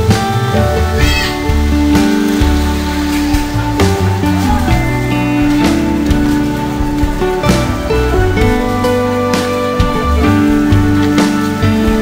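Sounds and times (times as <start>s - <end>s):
mellow instrumental groove: 0.0s - 12.0s.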